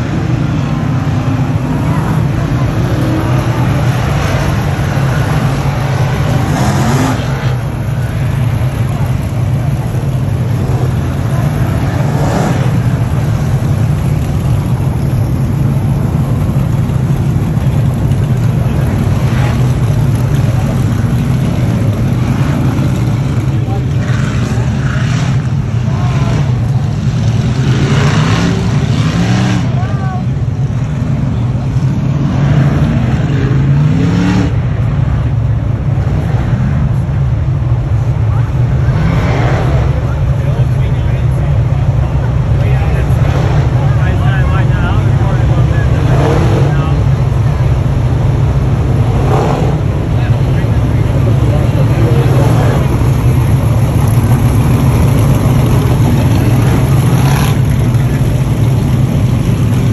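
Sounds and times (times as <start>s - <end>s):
cars accelerating: 0.0s - 59.9s
race car engines roaring: 0.0s - 59.9s.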